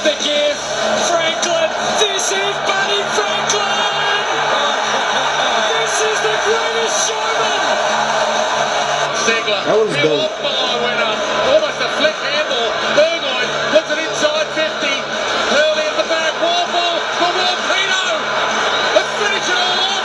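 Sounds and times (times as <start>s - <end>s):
highlight-reel music: 0.0s - 20.0s
stadium crowd noise: 0.0s - 20.0s
person speaking: 9.6s - 10.4s.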